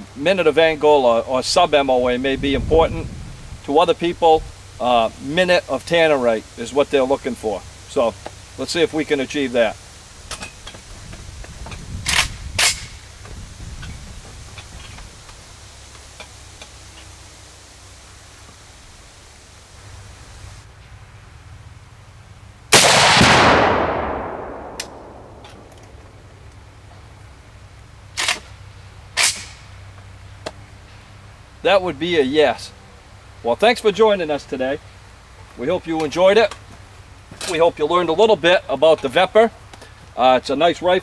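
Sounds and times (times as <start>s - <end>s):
rifle shot: 12.0s - 13.0s, 22.7s - 26.0s, 29.2s - 29.6s
explosive target detonating: 22.7s - 26.0s.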